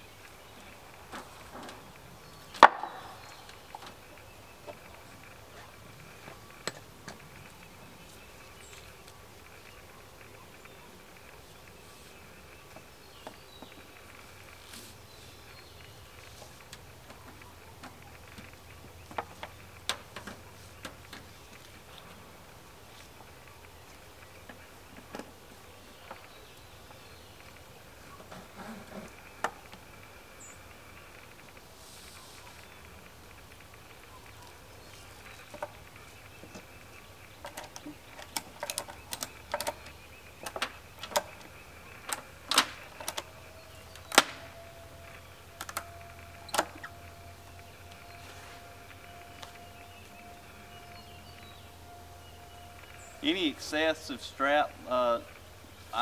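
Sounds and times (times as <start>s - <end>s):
handling sounds: 34.2s - 54.3s.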